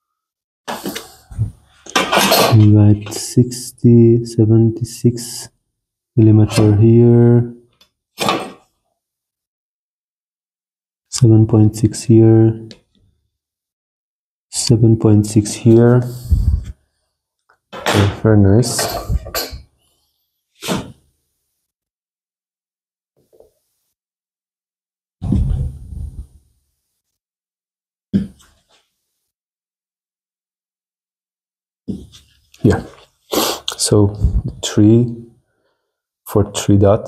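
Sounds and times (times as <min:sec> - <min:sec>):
man speaking: 0:02.5 - 0:05.5, 0:06.2 - 0:07.6, 0:11.1 - 0:12.7, 0:14.5 - 0:16.6, 0:17.9 - 0:19.3, 0:32.6 - 0:33.0, 0:33.7 - 0:35.2, 0:36.3 - 0:37.0.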